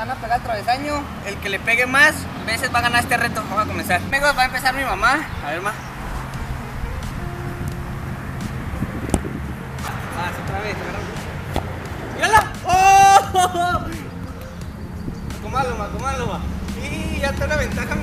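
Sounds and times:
low outdoor rumble: 0.0s - 18.0s
balls being kicked: 8.4s - 18.0s
person calling out loudly: 12.3s - 14.0s.

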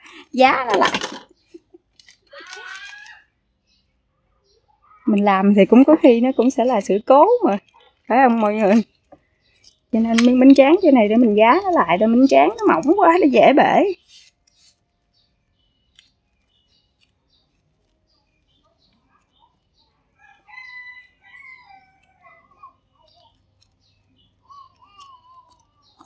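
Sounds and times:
rice paper clicks: 0.8s - 3.3s, 13.9s - 19.8s, 22.9s - 26.0s.

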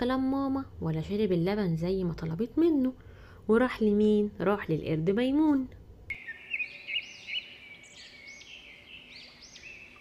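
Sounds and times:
birds chirping: 6.1s - 10.0s
steady high bird twitter: 6.1s - 10.0s.

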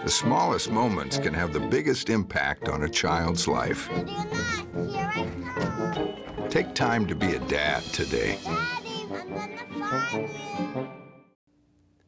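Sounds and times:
soft background music: 0.0s - 11.2s.

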